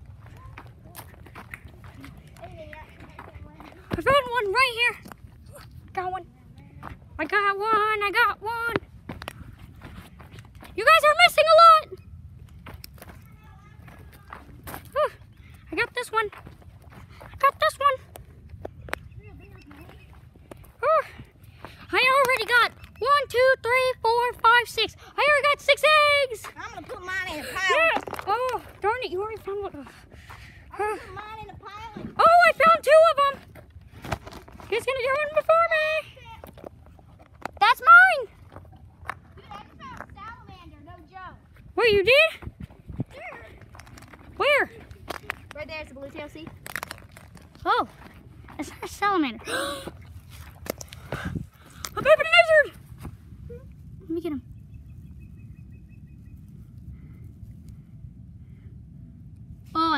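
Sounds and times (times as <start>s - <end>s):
wind rumble on microphone: 25.9s - 48.8s, 49.9s - 59.9s.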